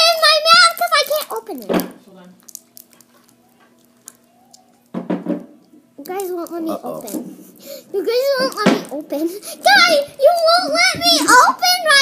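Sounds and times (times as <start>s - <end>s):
candy wrapper crinkling: 0.0s - 5.0s, 6.0s - 9.0s.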